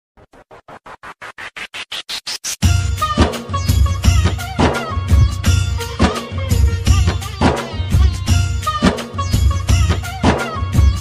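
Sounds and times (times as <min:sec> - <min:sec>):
rising chopped noise pulses: 0:00.2 - 0:02.8.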